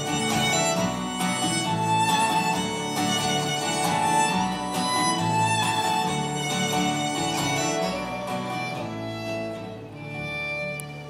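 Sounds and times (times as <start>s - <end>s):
live folk-rock band playing: 0.0s - 11.0s.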